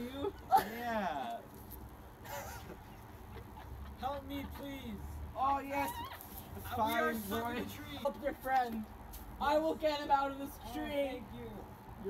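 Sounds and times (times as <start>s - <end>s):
faint stifled laugh: 2.2s - 4.1s.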